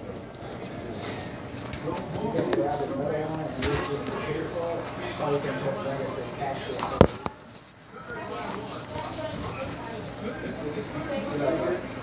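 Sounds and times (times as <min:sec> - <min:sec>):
people talking indistinctly: 0:00.5 - 0:11.8.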